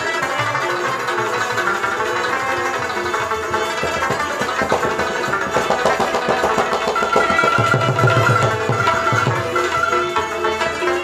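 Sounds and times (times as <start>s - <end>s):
rubab plucking: 0.0s - 11.0s
tabla: 0.0s - 11.0s.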